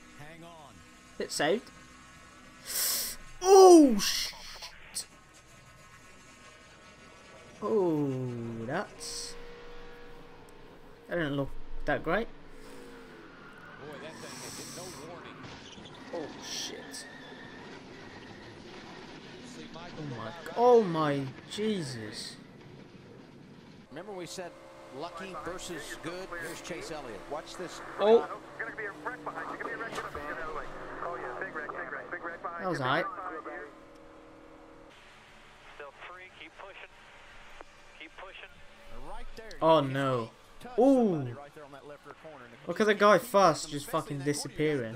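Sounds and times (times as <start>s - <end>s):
person speaking: 2.8s - 4.7s
race car interior noise: 4.8s - 20.6s, 21.2s - 44.8s.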